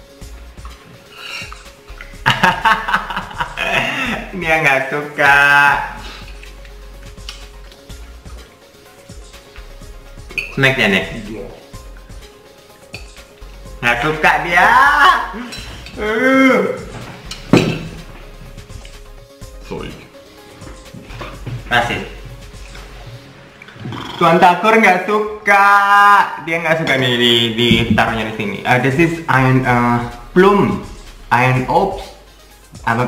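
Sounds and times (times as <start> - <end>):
man laughing loudly: 2.2 - 4.4, 14.8 - 16.6
man vocalizing: 14.0 - 16.9.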